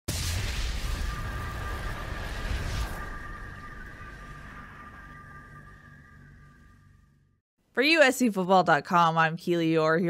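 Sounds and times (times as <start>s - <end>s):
low rumble: 0.1s - 7.4s.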